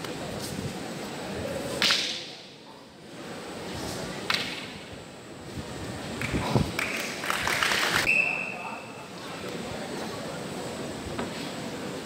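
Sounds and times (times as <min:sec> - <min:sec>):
whip-like stick crack: 0:01.8 - 0:02.4, 0:04.3 - 0:04.7.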